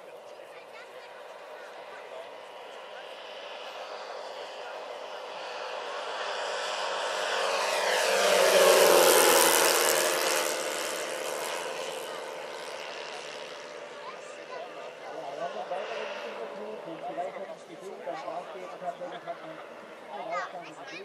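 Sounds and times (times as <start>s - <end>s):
model airplane propeller flyby: 0.0s - 21.0s.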